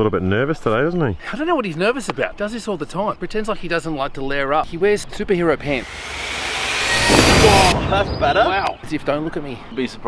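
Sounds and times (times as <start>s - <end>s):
whoosh sound effect: 5.7s - 8.8s.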